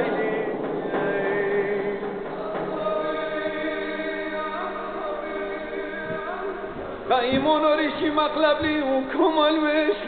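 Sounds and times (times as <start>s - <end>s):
choir singing held notes: 0.0s - 7.2s.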